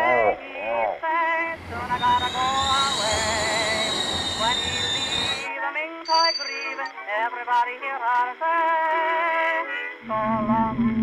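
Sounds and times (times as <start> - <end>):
high steady screeching tone: 1.5 - 5.5, 6.1 - 7.0
loud rushing hiss: 1.5 - 5.5
low rumble: 10.0 - 11.0.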